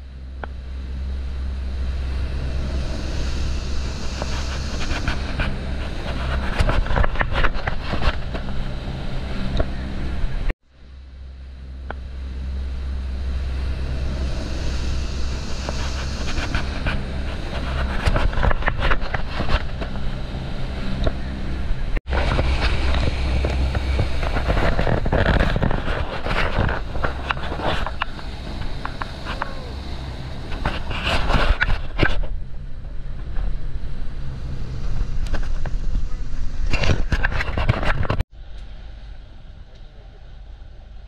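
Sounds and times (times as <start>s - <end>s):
boat engine droning: 0.0s - 41.0s
wind: 0.0s - 41.0s.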